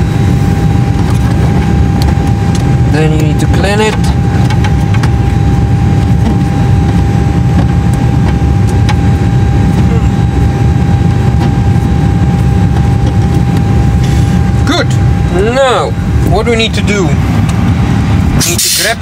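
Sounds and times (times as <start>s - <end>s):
aircraft equipment rumble: 0.0s - 19.0s
thin whine: 0.0s - 19.0s.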